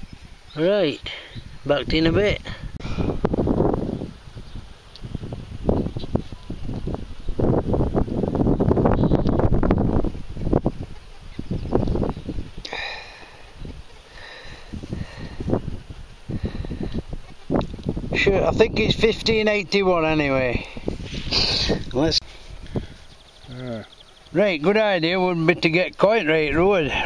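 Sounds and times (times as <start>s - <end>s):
wind on microphone: 0.0s - 24.4s
microphone handling noise: 2.4s - 12.9s, 14.6s - 19.4s, 20.0s - 23.2s.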